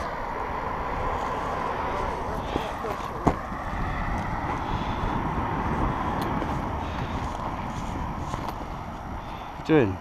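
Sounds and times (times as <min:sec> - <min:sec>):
road traffic noise: 0:00.0 - 0:10.0
wind rumble on microphone: 0:00.0 - 0:10.0.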